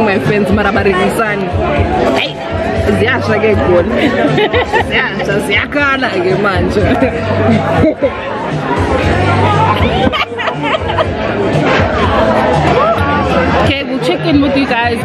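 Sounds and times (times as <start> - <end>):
background music with low bass: 0.0 - 15.0
voices chattering and laughing: 0.0 - 15.0.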